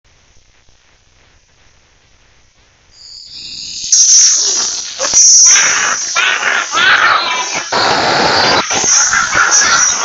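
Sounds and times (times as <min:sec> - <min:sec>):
loud distorted noise: 0:02.5 - 0:10.0.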